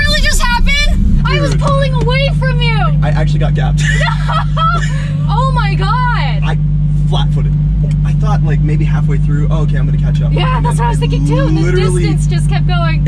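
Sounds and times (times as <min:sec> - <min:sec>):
car engine low drone: 0:00.0 - 0:13.0
people talking and laughing: 0:00.0 - 0:13.0.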